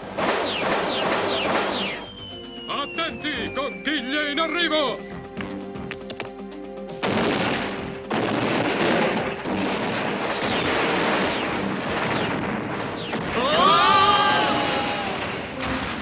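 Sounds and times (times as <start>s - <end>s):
falling whistles: 1.2s - 5.3s
cartoon explosions rumbling: 7.0s - 16.0s
voices shouting: 13.4s - 15.2s.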